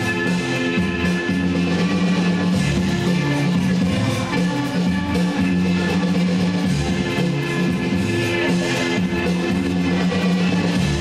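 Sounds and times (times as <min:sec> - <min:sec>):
bass line: 0:00.0 - 0:11.0
drum kit beat: 0:00.0 - 0:11.0
guitar: 0:00.0 - 0:11.0.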